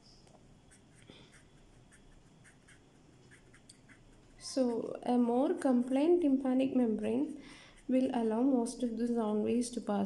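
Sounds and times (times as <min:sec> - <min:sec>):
pen scratching on a surface: 0:00.7 - 0:05.0.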